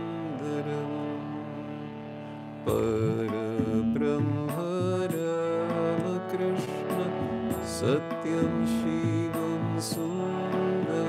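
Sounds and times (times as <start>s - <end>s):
man singing a chant: 0.0s - 1.8s, 2.7s - 11.0s
harmonium chords: 0.0s - 11.0s.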